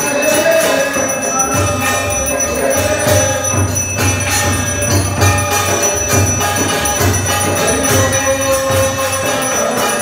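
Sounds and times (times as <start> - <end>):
temple bell ringing: 0.0 - 10.0.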